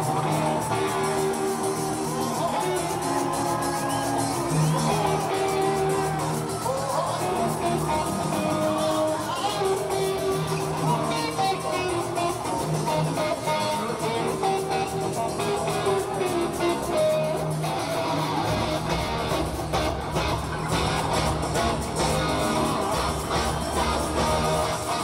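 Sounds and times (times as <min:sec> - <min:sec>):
electric guitar: 0:00.0 - 0:25.0
bass and drums: 0:14.1 - 0:25.0.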